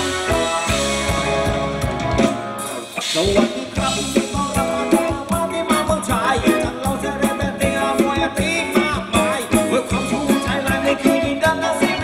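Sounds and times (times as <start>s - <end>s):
drum kit beating: 0.0s - 12.0s
live band playing dance music: 0.0s - 12.0s.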